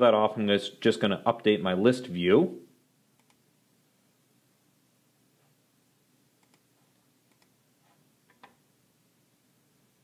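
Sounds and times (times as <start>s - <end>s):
computer mouse clicks: 3.2s - 3.4s, 6.4s - 6.7s, 7.3s - 7.6s, 8.3s - 8.6s.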